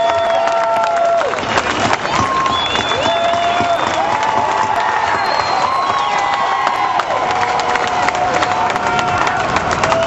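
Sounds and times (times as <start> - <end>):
crowd cheering and clapping: 0.0 - 10.0
high screams: 2.0 - 10.0.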